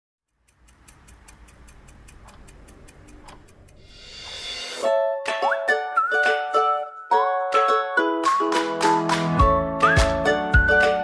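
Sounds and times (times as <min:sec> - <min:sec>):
clock-like ticking: 0:00.2 - 0:04.4
plucked-string tune: 0:04.8 - 0:11.0.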